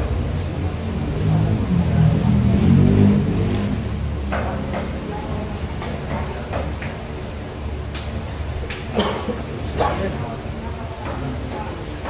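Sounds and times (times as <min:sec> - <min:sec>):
vehicle engine rumbling: 0:00.0 - 0:05.2.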